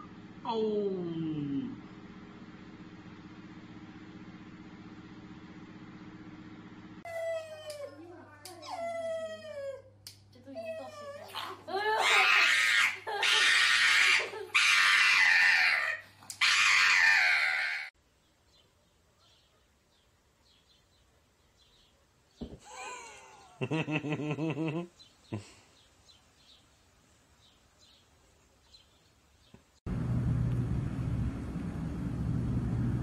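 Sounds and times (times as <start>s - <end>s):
dog whining: 7.1s - 8.0s, 8.6s - 17.9s
dog screaming: 10.8s - 18.0s.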